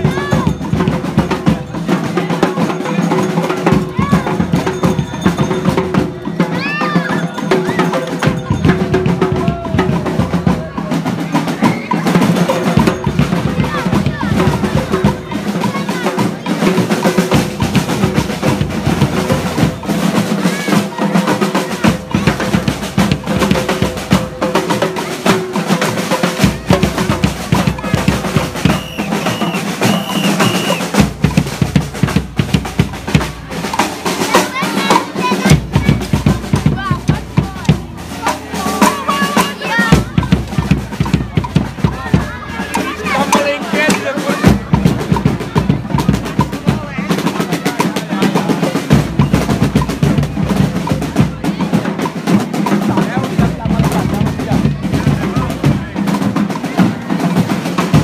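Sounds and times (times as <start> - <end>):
bass drum beats: 0.0 - 58.0
crowd voices: 0.0 - 58.0
snare drum rolls: 0.0 - 58.0.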